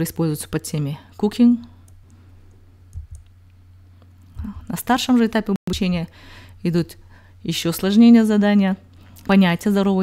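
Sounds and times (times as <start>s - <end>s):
low electrical hum: 0.0s - 10.0s
computer mouse clicks: 1.8s - 3.4s.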